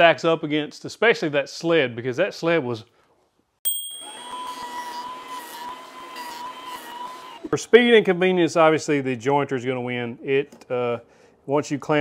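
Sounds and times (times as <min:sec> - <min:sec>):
jointer motor whine: 0:04.0 - 0:07.6.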